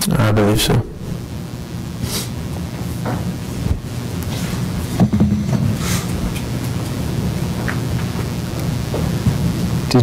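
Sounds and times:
rumbling hiss with low hum: 0.0s - 10.0s.

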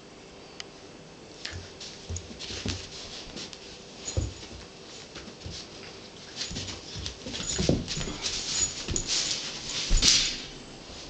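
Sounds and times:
pets scuffling on carpet: 1.5s - 11.0s.

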